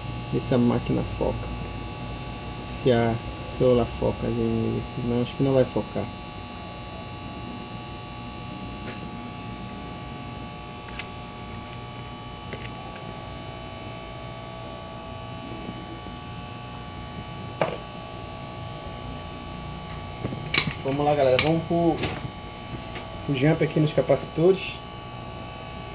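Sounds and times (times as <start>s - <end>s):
steady electrical hum: 0.0s - 25.9s.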